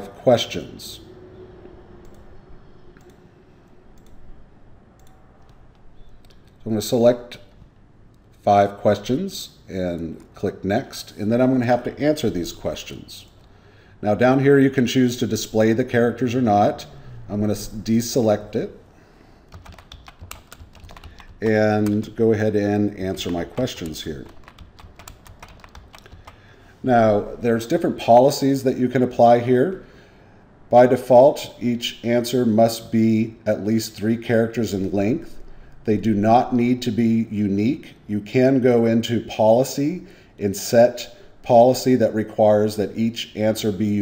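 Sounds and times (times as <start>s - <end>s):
low background hum: 0.0s - 44.0s
typing on a computer keyboard: 19.5s - 22.2s, 23.0s - 26.4s.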